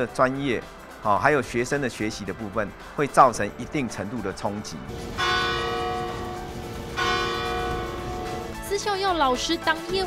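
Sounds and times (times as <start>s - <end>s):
large metal bell ringing: 5.2s - 8.6s.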